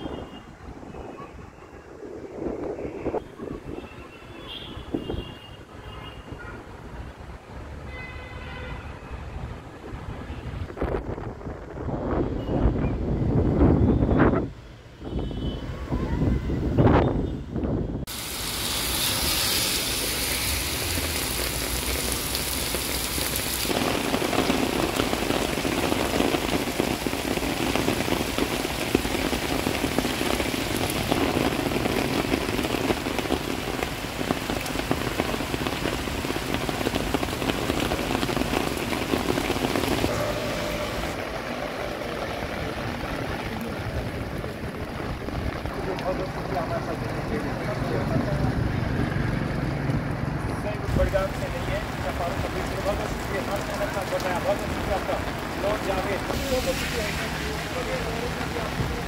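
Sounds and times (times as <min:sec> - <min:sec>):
heavy rain on paved road: 0:00.0 - 0:59.0.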